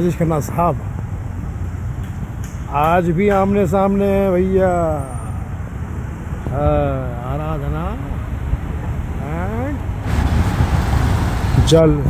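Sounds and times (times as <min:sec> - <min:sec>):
road vehicles rumbling past: 0:00.0 - 0:12.0.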